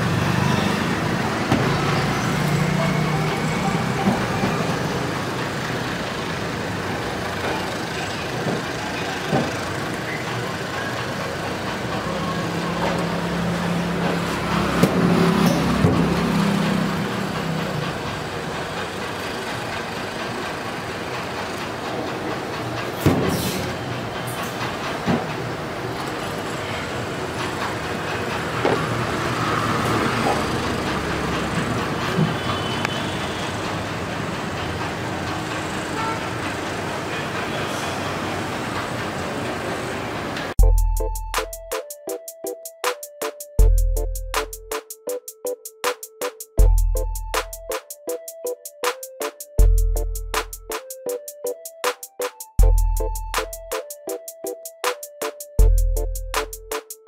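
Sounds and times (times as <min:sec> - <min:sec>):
road traffic noise: 0:00.0 - 0:57.0
passing vehicle drone: 0:12.2 - 0:18.2.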